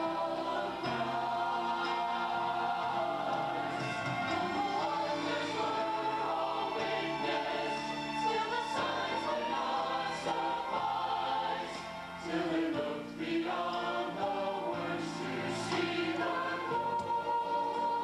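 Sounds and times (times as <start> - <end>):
choir singing held chords: 0.0 - 18.0.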